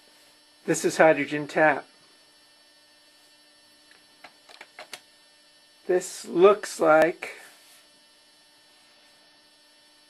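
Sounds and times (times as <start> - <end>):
faint electrical hum: 0.0 - 10.0
small clicks: 3.9 - 5.1.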